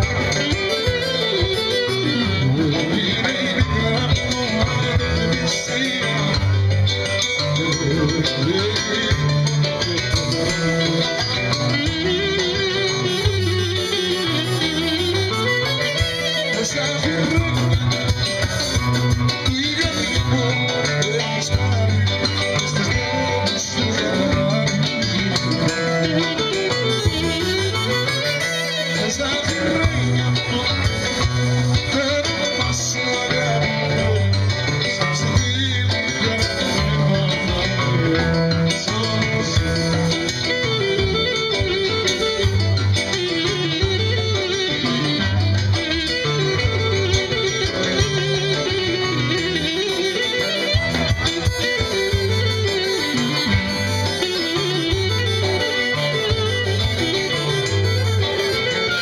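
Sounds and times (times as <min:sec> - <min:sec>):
drums: 0:00.0 - 0:59.0
repeating bass line: 0:00.0 - 0:59.0
clarinet melody: 0:10.3 - 0:19.2, 0:25.4 - 0:31.7, 0:39.7 - 0:59.0.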